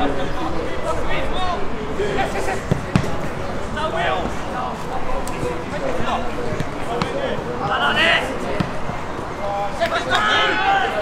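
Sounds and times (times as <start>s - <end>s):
distant players shouting: 0.3s - 11.0s
ball being kicked: 2.6s - 3.3s, 6.4s - 7.3s, 8.5s - 9.0s.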